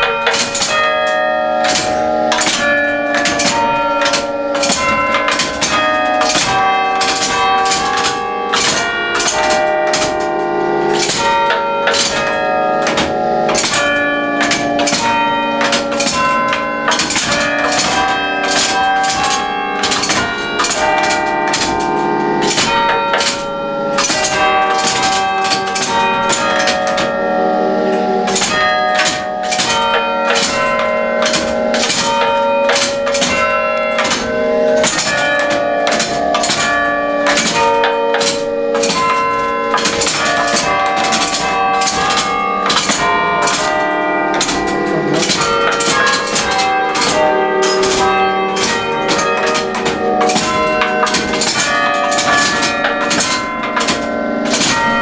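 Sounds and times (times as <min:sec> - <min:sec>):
carillon bells playing tune: 0:00.0 - 0:55.0.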